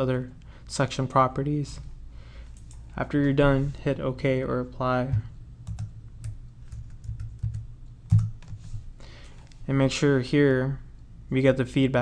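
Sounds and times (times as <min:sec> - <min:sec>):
low steady hum: 0:00.0 - 0:12.0
keyboard and mouse clicks: 0:05.7 - 0:09.4.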